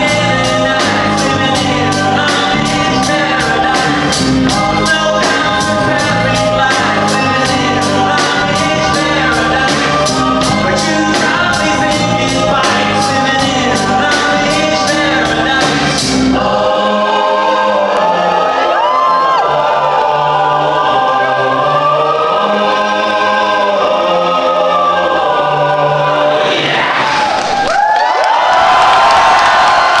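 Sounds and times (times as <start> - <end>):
choir of voices holding a chord: 0.0 - 27.3
live band music: 0.0 - 27.4
audience cheering and screaming: 17.1 - 20.5, 26.6 - 30.0.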